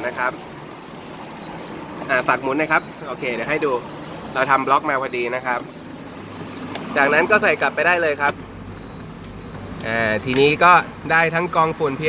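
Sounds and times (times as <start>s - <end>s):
person speaking: 6.8s - 8.4s.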